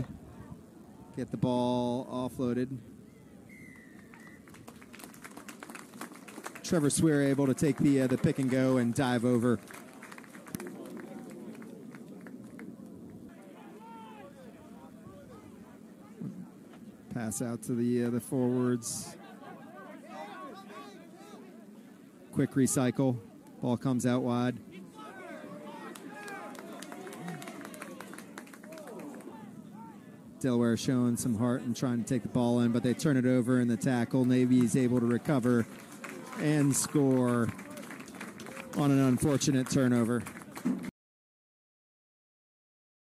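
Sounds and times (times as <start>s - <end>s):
distant players shouting: 13.3s - 16.3s, 18.4s - 21.7s, 24.6s - 30.3s.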